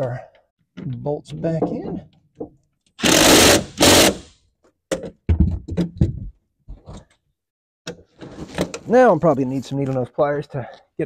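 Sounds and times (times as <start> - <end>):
cordless drill bursts: 3.0 - 4.3.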